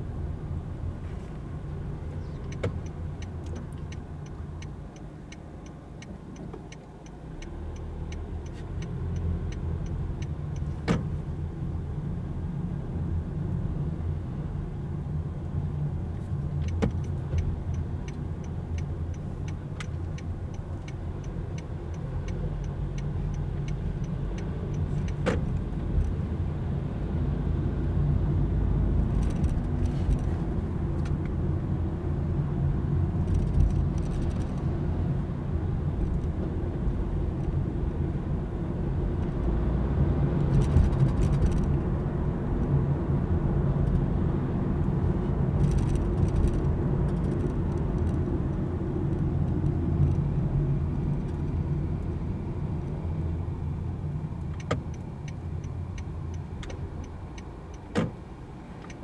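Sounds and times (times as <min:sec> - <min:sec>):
car engine and road rumble: 0:00.0 - 0:59.0
turn signal ticking: 0:01.5 - 0:11.8, 0:13.4 - 0:59.0.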